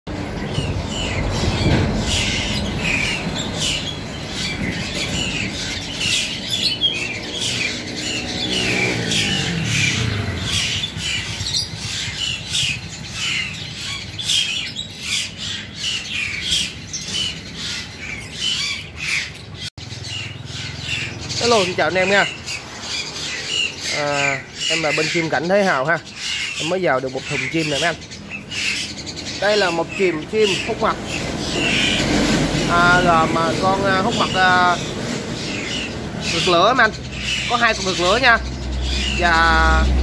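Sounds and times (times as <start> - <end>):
small birds chirping: 0.1 - 40.0.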